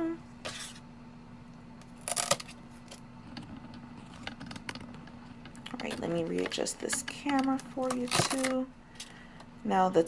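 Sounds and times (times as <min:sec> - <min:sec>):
sharp handling clicks and knocks: 0:03.3 - 0:09.1.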